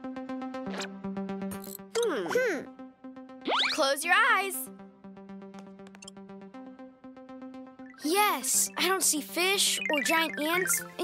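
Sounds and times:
light electronic music: 0:00.0 - 0:11.0.

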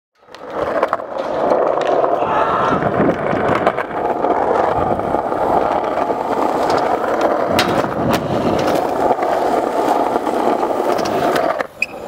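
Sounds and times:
skateboard wheels rolling on concrete: 0:00.2 - 0:12.0.

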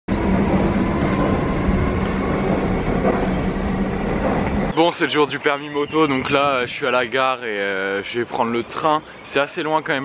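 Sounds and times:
constant low hum: 0:00.1 - 0:07.5
train rumbling: 0:00.1 - 0:09.0.

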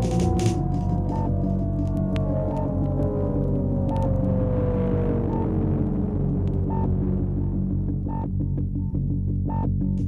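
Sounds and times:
low synth drone: 0:00.0 - 0:10.0.

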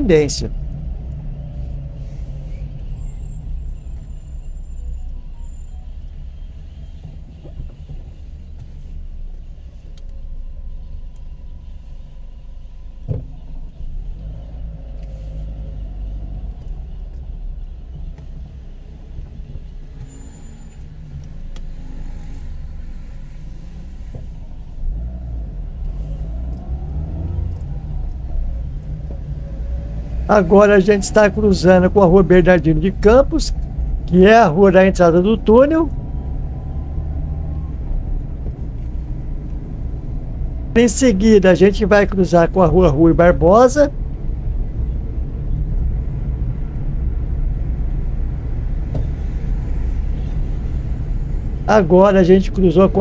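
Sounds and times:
car engine and tyre noise: 0:00.0 - 0:53.0.

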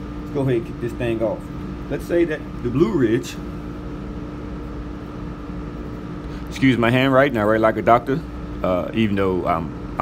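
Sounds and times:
machinery hum: 0:00.0 - 0:10.0.

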